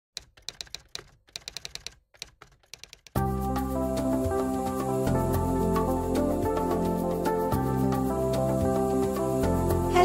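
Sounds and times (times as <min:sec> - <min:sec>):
typing keystrokes clicking: 0:00.2 - 0:03.2
music with held notes: 0:03.2 - 0:10.0.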